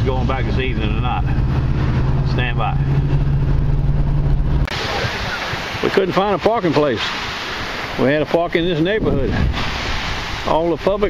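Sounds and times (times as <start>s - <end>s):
car engine hum: 0.0s - 5.8s
road rumble: 0.0s - 11.0s
surf: 0.0s - 11.0s
wind: 0.0s - 11.0s.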